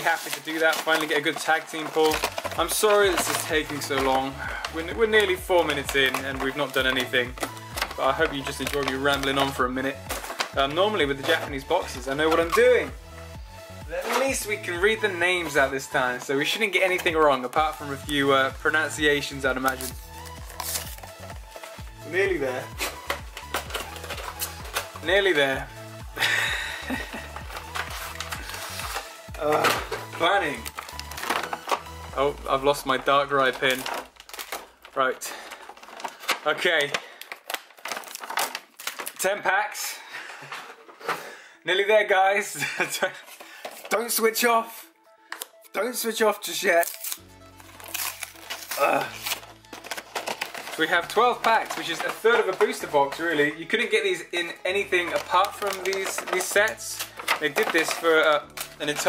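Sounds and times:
cardboard packaging rustling: 0.0 - 13.0, 13.9 - 41.4, 42.7 - 59.0.

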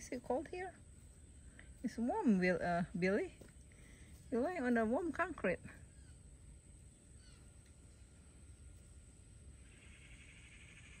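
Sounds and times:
faint low rumble: 0.0 - 11.0
faint steady buzz: 0.0 - 11.0
bird calls: 5.8 - 8.1, 9.6 - 11.0.

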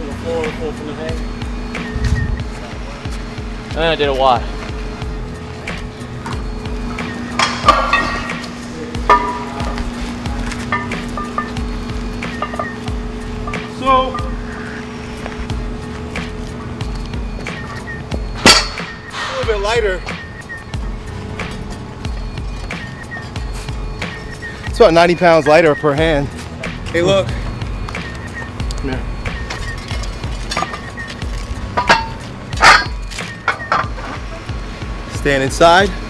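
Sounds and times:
iron weight plates clinking: 6.1 - 14.7, 17.5 - 19.8, 29.4 - 34.5.

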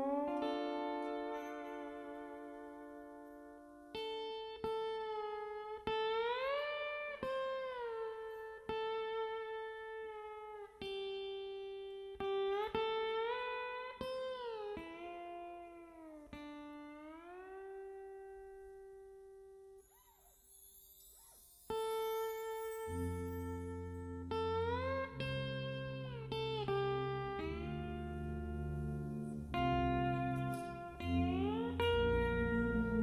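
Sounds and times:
lap steel guitar sliding notes: 0.0 - 18.9, 21.2 - 33.0.

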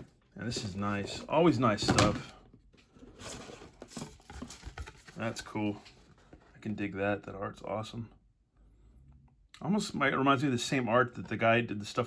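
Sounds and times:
cardboard box being opened: 3.0 - 5.8.

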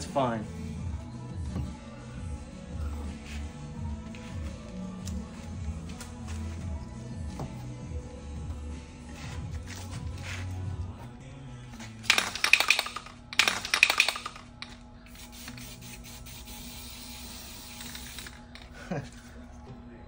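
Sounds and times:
background music: 0.0 - 20.0
spray can hissing: 12.1 - 18.5
aerosol spray can rattling: 12.1 - 18.6.

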